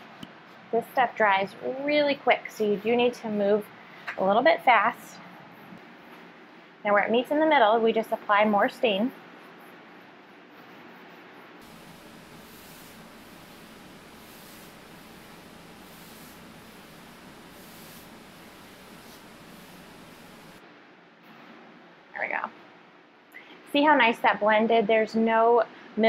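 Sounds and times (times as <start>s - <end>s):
steady hiss: 8.0s - 20.6s
stain pad swishing on wood: 8.5s - 20.6s.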